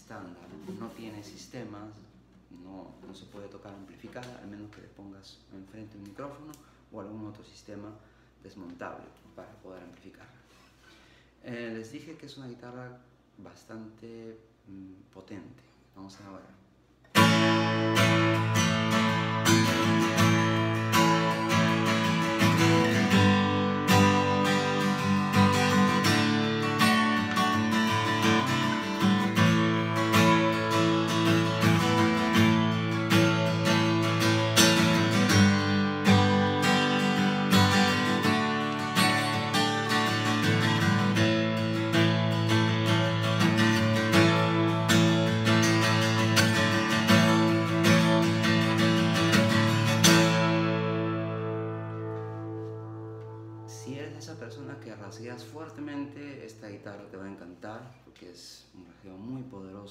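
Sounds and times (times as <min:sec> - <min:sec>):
acoustic guitar strummed: 0:17.0 - 0:54.2.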